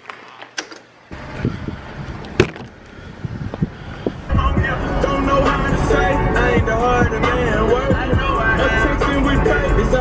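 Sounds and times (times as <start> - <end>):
low rumbling noise: 1.1 - 10.0.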